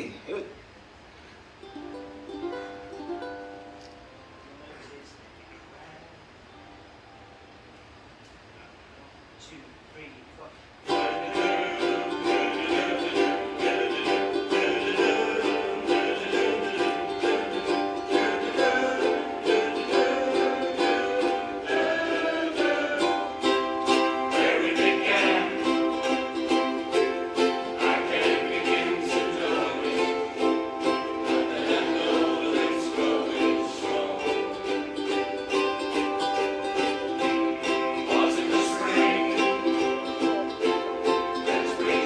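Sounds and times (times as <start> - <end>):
ukulele chords: 1.1 - 4.8, 10.8 - 42.0.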